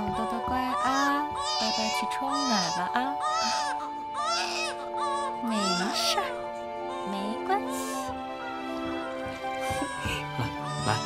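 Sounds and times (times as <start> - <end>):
soft background music: 0.0 - 11.0
baby crying: 0.7 - 8.2, 9.6 - 11.0.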